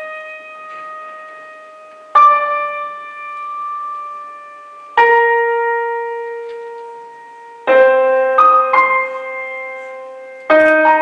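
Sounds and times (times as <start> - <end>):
slow piano notes: 0.0 - 11.0.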